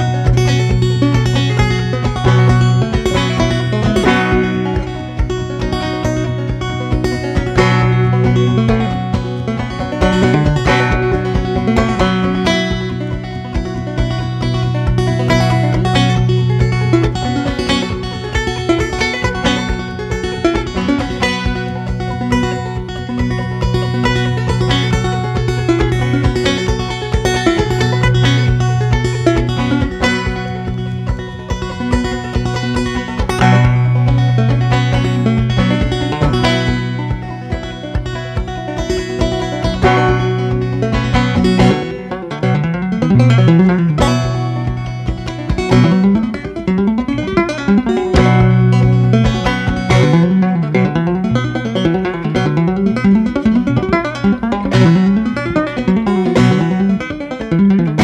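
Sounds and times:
banjo tune: 0.0 - 58.0.

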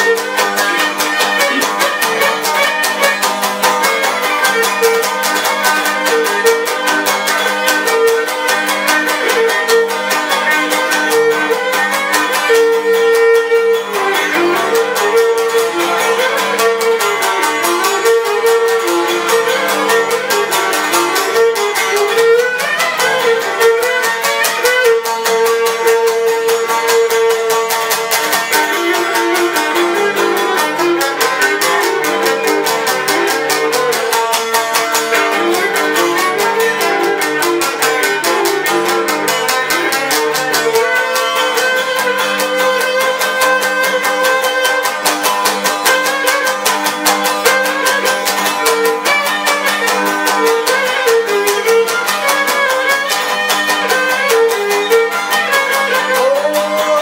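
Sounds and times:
lyra playing a dance melody: 0.0 - 57.0
rhythmic lute strumming: 0.0 - 57.0.

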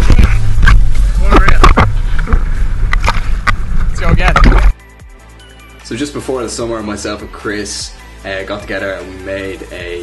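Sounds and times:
wind rumble: 0.0 - 4.8.

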